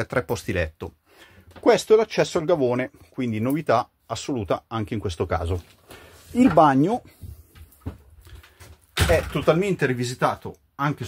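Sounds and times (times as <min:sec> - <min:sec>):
faint footsteps and knocks: 0:06.4 - 0:09.4.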